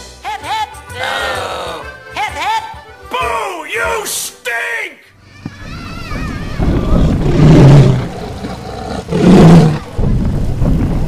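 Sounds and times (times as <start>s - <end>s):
dinosaur roar sound effect: 5.6s - 10.0s.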